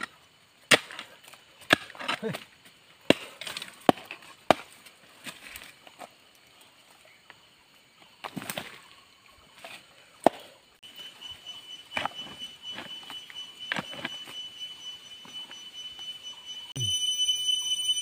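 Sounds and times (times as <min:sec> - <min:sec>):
high-pitched whine: 0:10.8 - 0:18.0.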